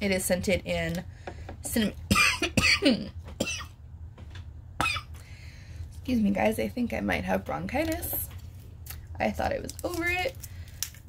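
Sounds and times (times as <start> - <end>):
woman coughing harshly: 2.1 - 3.7, 4.8 - 5.1.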